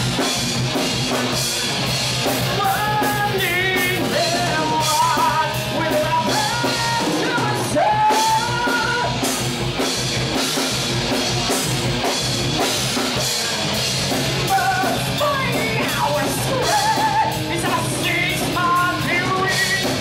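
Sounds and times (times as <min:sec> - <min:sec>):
loud rock music with singing: 0:00.0 - 0:20.0.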